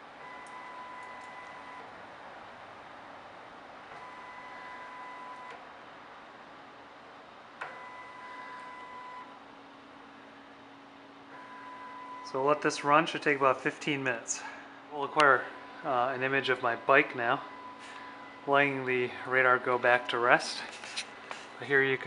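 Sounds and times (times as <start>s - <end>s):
motor drive whine: 0.0s - 22.0s
click: 7.6s - 7.8s.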